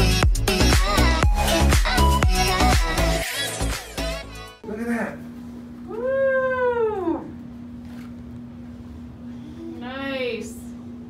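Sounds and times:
steady low hum: 4.6 - 11.0.

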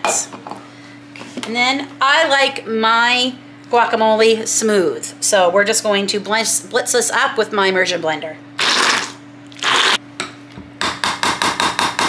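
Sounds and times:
immersion blender grinding: 8.6 - 10.0.

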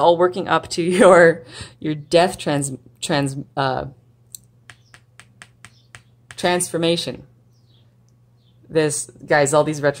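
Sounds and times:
fingers snapping: 4.3 - 6.5.

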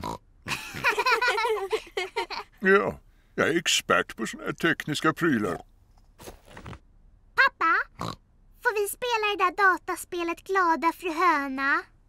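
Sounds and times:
cartoon pigs laughing: 0.5 - 2.5.

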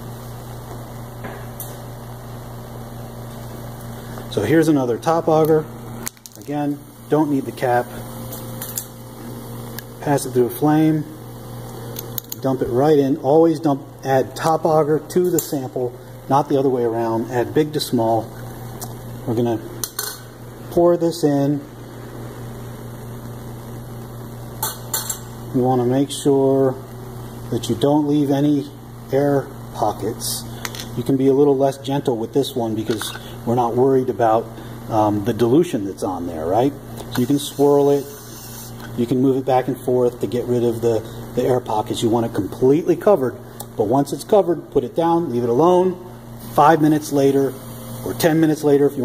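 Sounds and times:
background hiss: 0.0 - 49.0
low electrical hum: 0.0 - 49.0.

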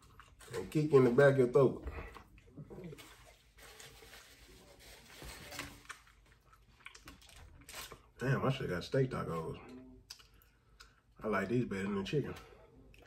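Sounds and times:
quiet chewing: 0.0 - 0.8, 5.2 - 8.1, 9.6 - 11.2.

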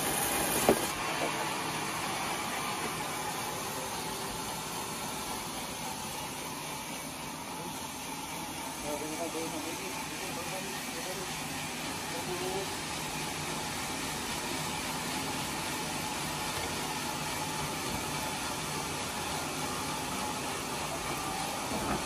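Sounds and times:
sawmill machinery humming: 0.0 - 22.0.

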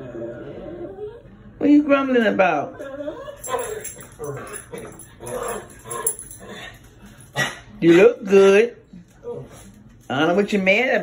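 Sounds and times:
collar tags jingling: 3.3 - 7.2.

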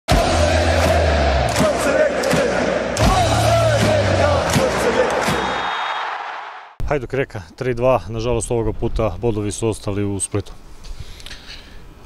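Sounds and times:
intro music with deep bass: 0.1 - 5.0
football crowd chanting: 0.1 - 6.8.

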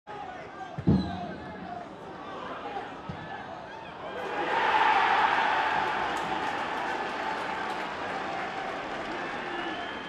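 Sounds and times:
players and crowd voices: 0.1 - 10.0.

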